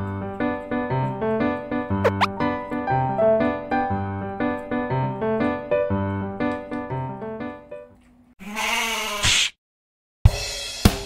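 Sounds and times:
sheep-like bleat: 8.4 - 9.5.

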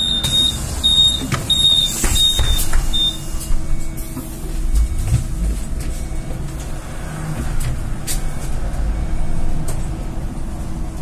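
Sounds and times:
high-pitched warning beeps: 0.0 - 6.5
trolleybus rumbling: 0.0 - 11.0.

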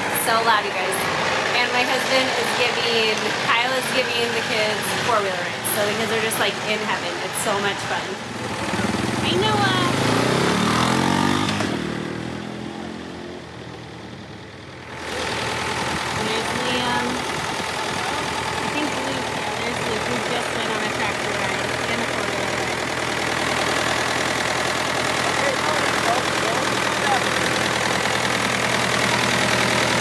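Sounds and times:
diesel tractor engine idling: 0.0 - 30.0
quad bike engine revving: 0.0 - 30.0.

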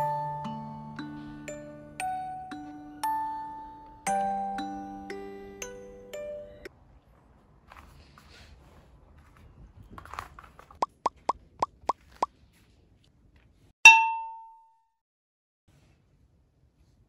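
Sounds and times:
cartoon plinking notes: 0.0 - 6.7, 13.9 - 14.5
bright bell ding: 13.9 - 14.7.

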